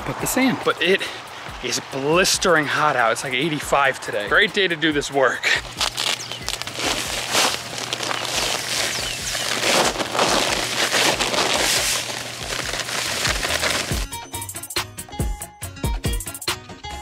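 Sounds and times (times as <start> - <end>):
sand pouring from a sack: 5.6 - 14.1
paper sack rustling: 5.6 - 14.2
background music with beat: 13.5 - 17.0.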